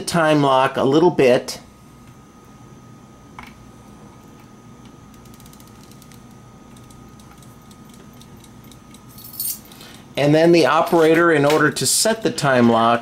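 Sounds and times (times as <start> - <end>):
clockwork ratchet clicks: 6.8 - 9.1
metallic jingle: 9.1 - 9.7.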